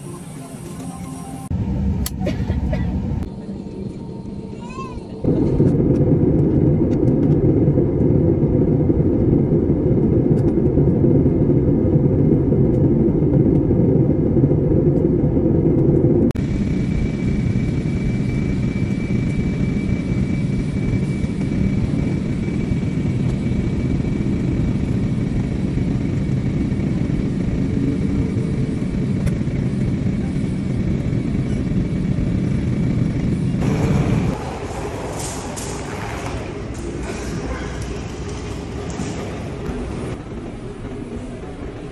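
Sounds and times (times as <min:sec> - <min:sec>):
airliner cabin engine noise: 0:00.0 - 0:41.9.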